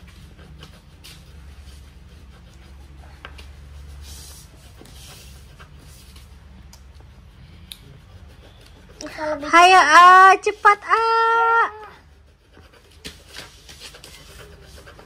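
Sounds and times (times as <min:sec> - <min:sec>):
coloured pencils scratching paper: 0:00.0 - 0:15.0.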